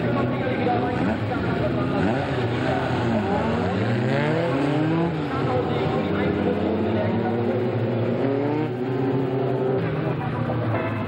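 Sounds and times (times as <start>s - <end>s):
race car engines revving: 0.0s - 11.0s.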